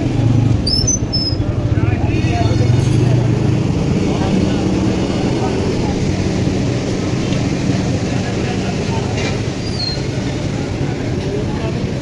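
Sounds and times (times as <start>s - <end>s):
chatter of passers-by: 0.0s - 12.0s
traffic rumble: 0.0s - 12.0s.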